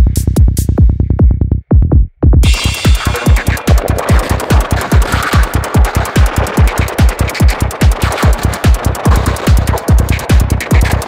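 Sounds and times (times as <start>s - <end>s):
fast kick drum and bass: 0.0s - 11.0s.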